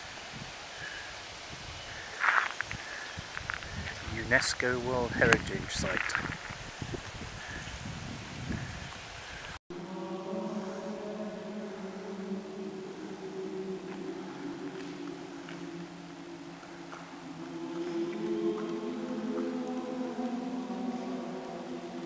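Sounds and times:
faint outdoor ambience: 0:00.0 - 0:22.0
choir chanting long notes: 0:09.7 - 0:22.0.

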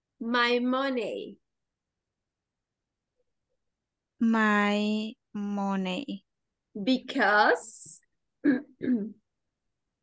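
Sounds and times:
person clearing throat: 0:08.4 - 0:09.2.

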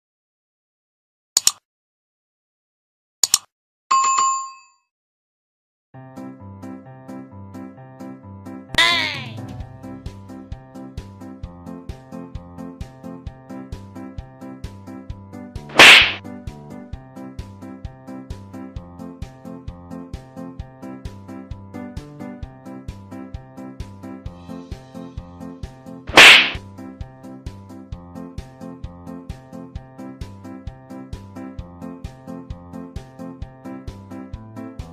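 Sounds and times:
background music with steady beat: 0:08.8 - 0:34.9
loud sharp smack: 0:15.7 - 0:16.2, 0:26.1 - 0:26.6.

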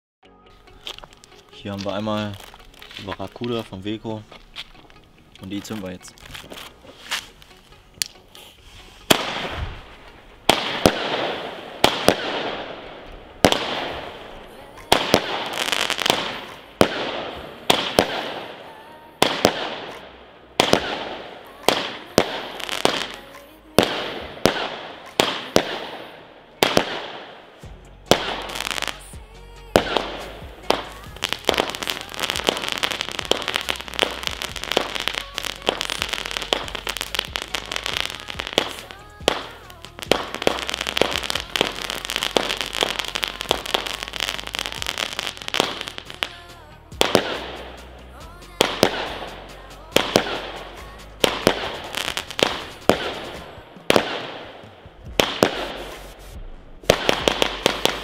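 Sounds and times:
firework bangs with crackling: 0:09.0 - 0:58.0.

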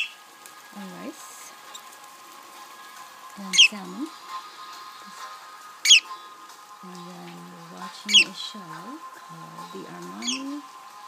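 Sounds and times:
faint background music: 0:00.0 - 0:11.0
budgerigar chirp: 0:08.1 - 0:08.4, 0:10.2 - 0:10.6.

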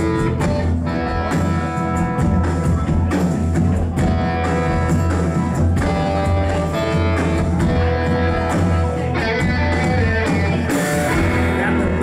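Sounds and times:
bass line: 0:00.0 - 0:12.0
drums: 0:00.0 - 0:12.0
electric guitars: 0:00.0 - 0:12.0.

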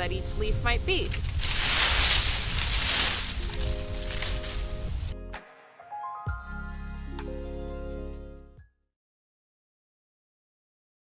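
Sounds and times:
soft background music: 0:00.0 - 0:01.2, 0:02.8 - 0:08.7
dry leaves rustling: 0:01.0 - 0:05.0.

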